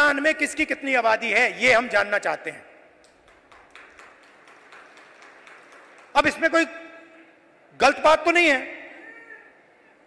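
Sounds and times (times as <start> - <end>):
faint venue background noise: 0.0 - 10.0.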